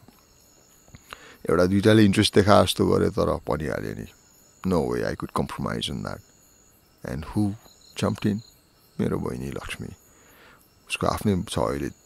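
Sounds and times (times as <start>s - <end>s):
man speaking: 1.4s - 6.2s, 7.0s - 8.4s, 9.0s - 10.0s, 10.9s - 12.0s.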